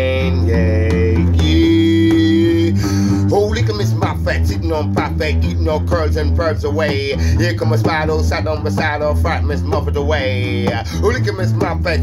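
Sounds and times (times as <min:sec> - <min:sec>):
man singing: 0:00.0 - 0:12.0.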